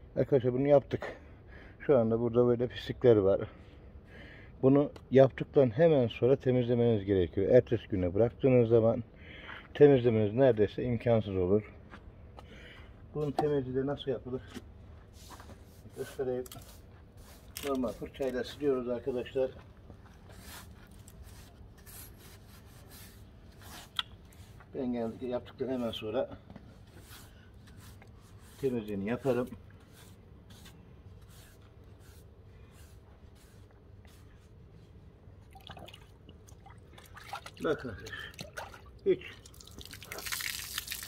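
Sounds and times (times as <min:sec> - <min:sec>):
push broom scrubbing stone steps: 0:15.2 - 0:19.5, 0:20.2 - 0:34.5
person speaking: 0:15.9 - 0:19.6, 0:27.8 - 0:30.6
water dripping and sloshing: 0:35.5 - 0:41.0.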